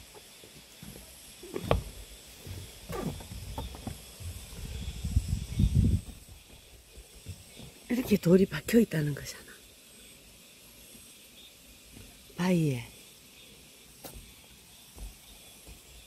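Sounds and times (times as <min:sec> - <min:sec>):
wind rumble on microphone: 0:03.0 - 0:06.8.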